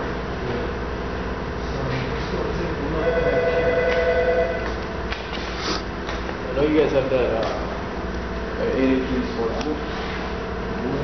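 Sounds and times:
telephone ringing: 3.0 - 4.7.

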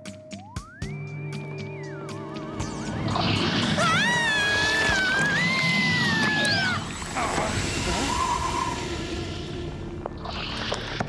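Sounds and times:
eerie background music: 0.0 - 11.0
woman screaming: 3.8 - 6.9.

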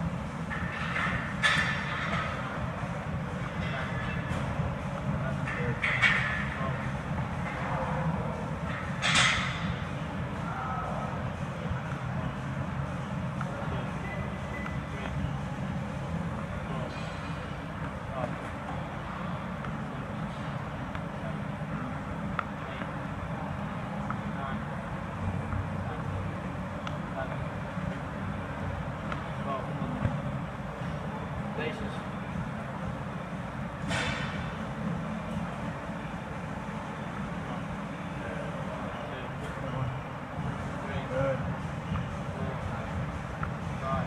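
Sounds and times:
low rumble of gym room noise: 0.0 - 44.0.

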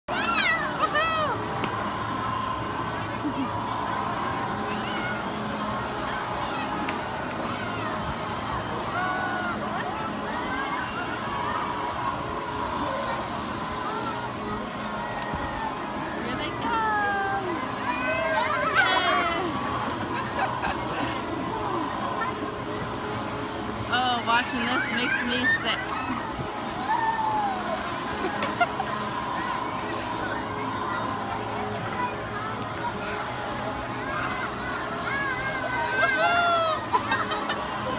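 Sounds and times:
children's voices and chatter: 0.1 - 37.9
excited children's voices: 0.1 - 37.9.

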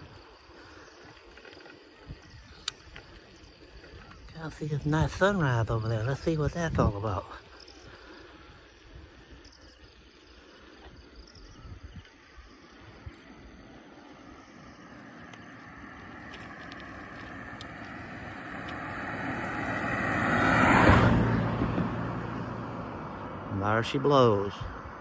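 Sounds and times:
car passing by: 14.8 - 25.0.

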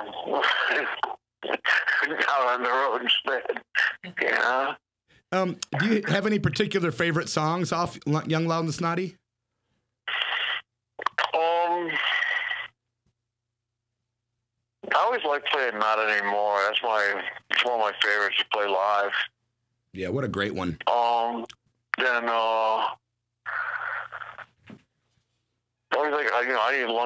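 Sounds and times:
speech: 0.2 - 9.2, 11.2 - 12.0, 14.8 - 19.3, 19.9 - 23.0, 25.9 - 27.0
man saying uh: 5.4 - 9.1.

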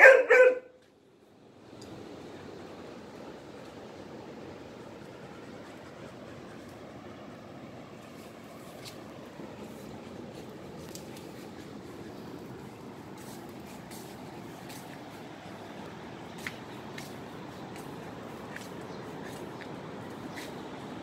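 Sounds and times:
rushing outdoor background noise: 0.0 - 21.0.

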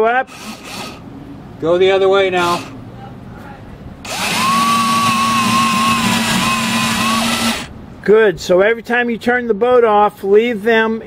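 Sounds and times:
actuator motor whine: 4.0 - 7.7.

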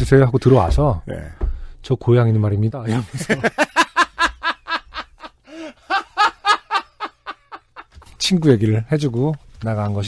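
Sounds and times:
laughter in quick bursts: 3.0 - 8.0.

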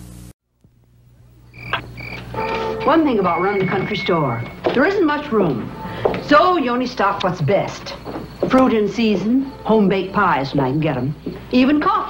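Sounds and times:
frog-like chirping calls: 1.4 - 4.6.

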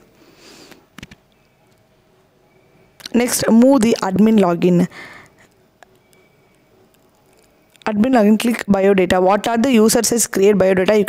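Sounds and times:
computer mouse clicks: 0.9 - 1.8.

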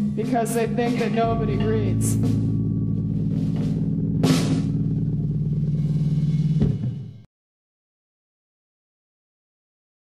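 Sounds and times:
rock band droning low chord: 0.0 - 7.2
hard drum hit: 0.0 - 7.3.

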